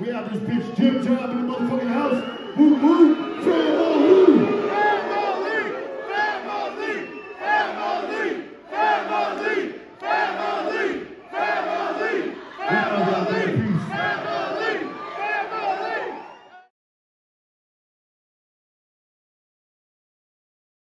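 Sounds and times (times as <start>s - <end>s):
crowd chanting in unison: 3.2s - 16.5s.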